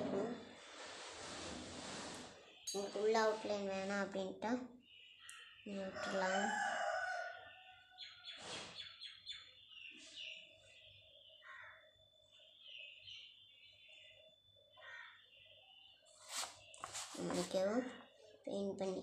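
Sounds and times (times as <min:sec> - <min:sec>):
birds chirping: 0:02.4 - 0:19.0.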